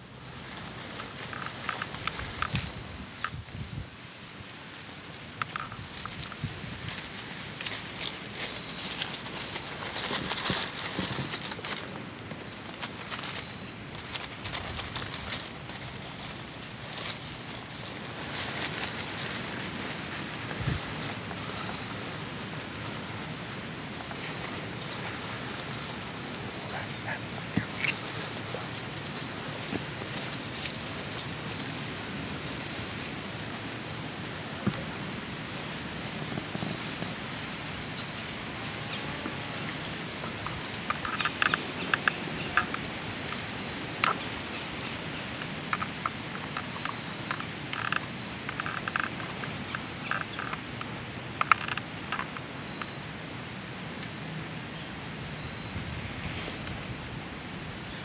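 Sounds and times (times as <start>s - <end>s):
outdoor background hiss: 0.0s - 58.0s
rustling leaves: 0.0s - 58.0s.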